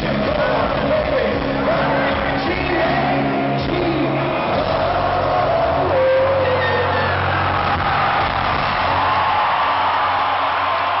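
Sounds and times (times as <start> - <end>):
amplified rock band: 0.0 - 11.0
crowd noise: 0.0 - 11.0.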